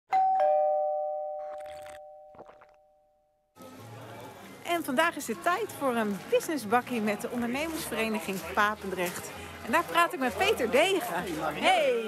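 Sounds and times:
two-note ding-dong chime: 0.1s - 2.9s.

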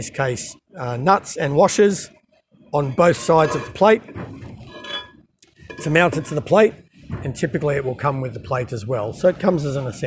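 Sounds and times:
metal bolts clinking and rattling: 3.1s - 6.5s
faint metallic ring: 4.7s - 6.4s.

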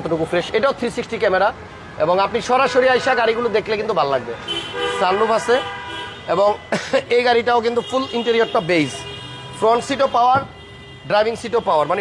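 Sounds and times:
vehicle horn blaring: 4.4s - 6.7s, 7.6s - 12.0s
man's voice: 6.3s - 10.5s.

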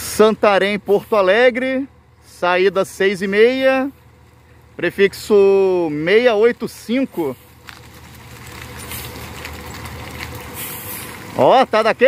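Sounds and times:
bus diesel engine rumbling: 0.0s - 12.0s.

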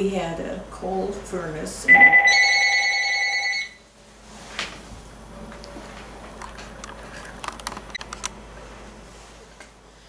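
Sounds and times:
telephone ringing: 1.9s - 3.8s.

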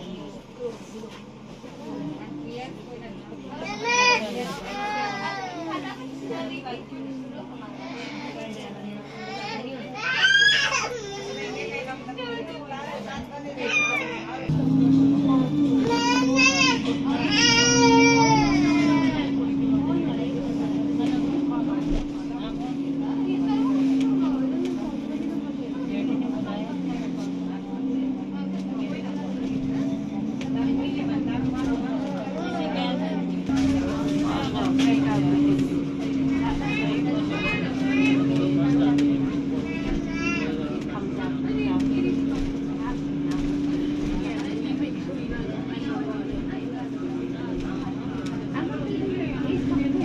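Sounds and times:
bus engine hum: 0.0s - 50.0s
faint passenger voices: 0.0s - 50.0s.

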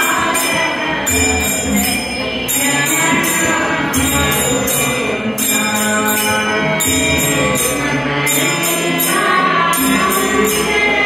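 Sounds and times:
hand cymbals jingling: 0.0s - 11.0s
harmonium: 0.0s - 11.0s
tabla: 0.0s - 11.0s
women singing together: 0.0s - 11.0s.

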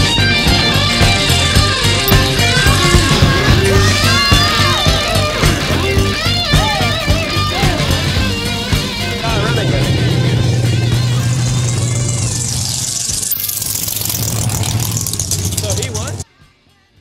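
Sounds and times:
background music: 0.0s - 12.6s
low engine hum: 2.0s - 16.2s
voices: 2.1s - 13.2s, 14.2s - 16.2s.

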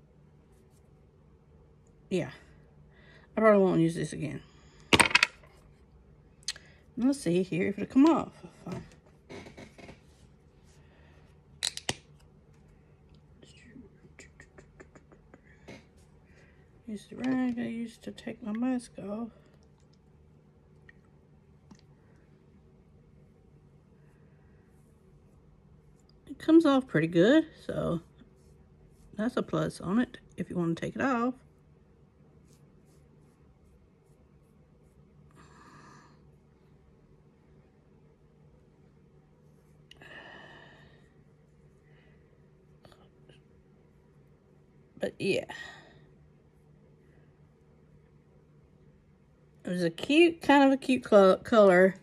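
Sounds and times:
cloth rubbing on skin: 27.9s - 29.2s, 31.4s - 35.3s.

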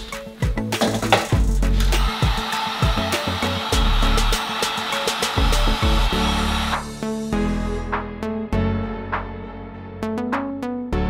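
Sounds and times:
background music: 0.0s - 11.0s
heat gun hissing: 0.8s - 6.9s.

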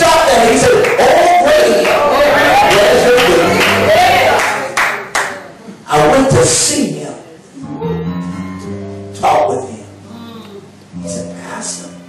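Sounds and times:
sharp hand claps: 2.7s - 5.4s.

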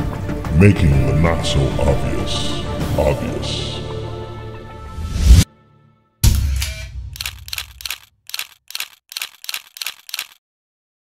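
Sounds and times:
rapid sharp clicks: 6.3s - 10.4s.

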